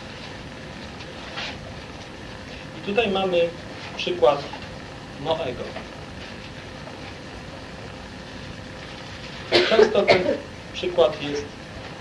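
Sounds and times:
faint steady hum: 0.0s - 12.0s
recording hiss: 0.0s - 12.0s.

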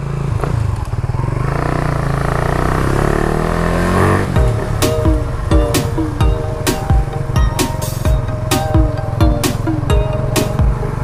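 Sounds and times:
motorcycle engine accelerating: 0.0s - 11.0s
electronic music with heavy beat: 4.4s - 11.0s.

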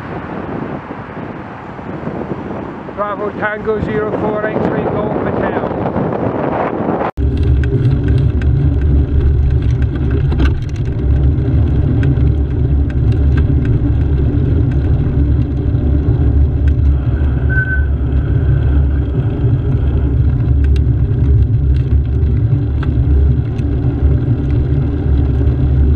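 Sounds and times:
vehicle drive rumble: 0.0s - 25.9s
wind on microphone: 0.0s - 25.9s.

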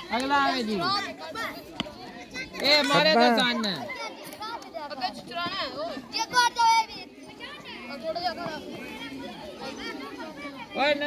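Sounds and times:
boys shouting: 0.3s - 11.0s.

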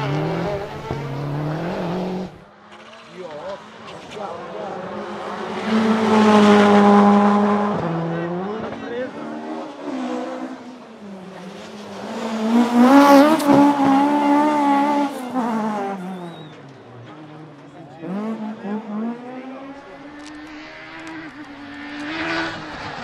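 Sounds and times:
rally car engines revving: 0.0s - 23.0s.

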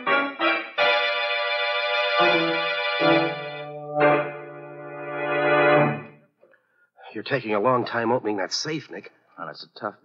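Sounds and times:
organ chord: 0.0s - 6.2s.

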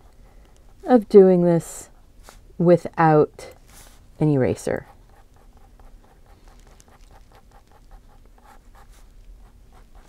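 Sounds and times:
ink pen scratching on paper: 4.8s - 10.0s.

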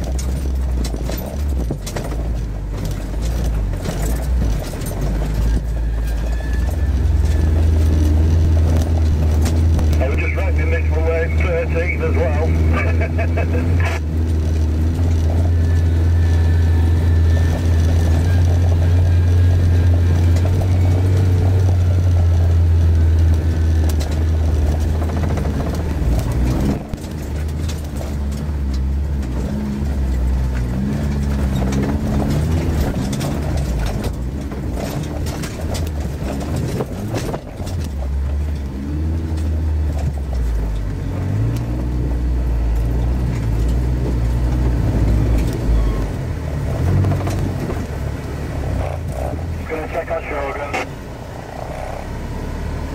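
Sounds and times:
vehicle knocks and rattles: 0.0s - 11.6s, 14.0s - 49.6s
car engine from inside cab: 0.0s - 52.9s.

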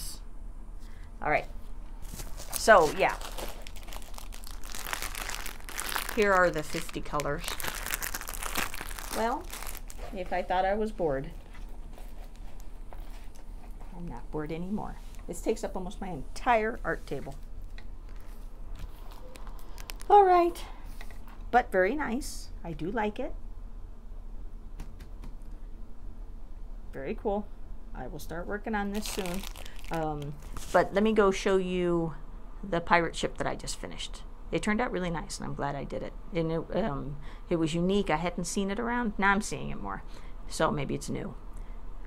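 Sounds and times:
low room hum: 0.0s - 42.0s
plastic wrapping crinkling: 1.9s - 10.6s, 11.2s - 13.9s, 18.0s - 20.2s, 28.8s - 31.0s.

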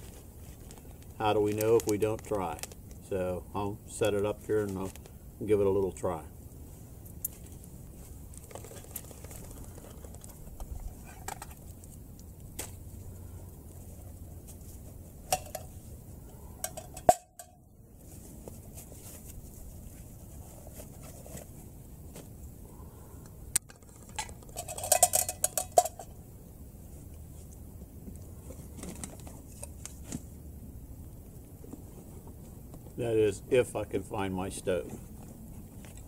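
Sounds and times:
metal cup clinks and knocks: 16.6s - 17.6s, 24.1s - 26.1s
metallic clattering: 23.7s - 26.1s.

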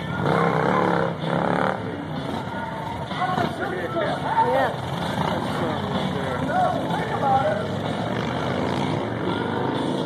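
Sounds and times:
crowd voices: 0.0s - 10.0s
motorcycle engines rumbling: 0.0s - 10.0s.

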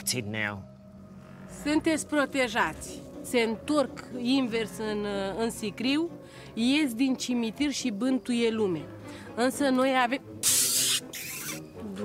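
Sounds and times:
woman speaking: 1.6s - 10.2s
sharp hiss: 10.4s - 11.6s.

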